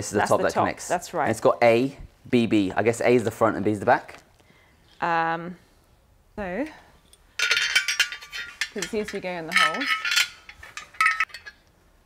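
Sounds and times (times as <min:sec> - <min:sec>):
metallic clinks: 0:07.0 - 0:11.7.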